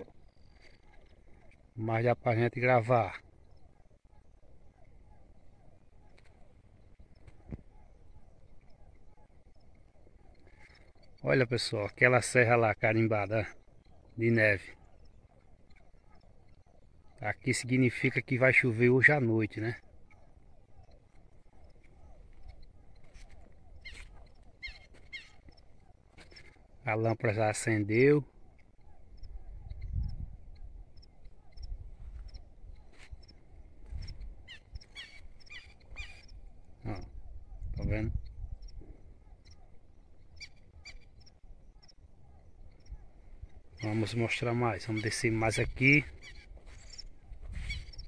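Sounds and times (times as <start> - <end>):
faint high chirps: 0.0 - 48.0
frogs croaking: 0.0 - 48.0
shrill bird calls: 0.0 - 48.0.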